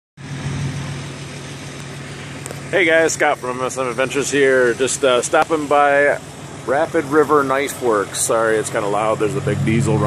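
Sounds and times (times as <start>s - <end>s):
diesel engine droning: 0.2s - 10.0s.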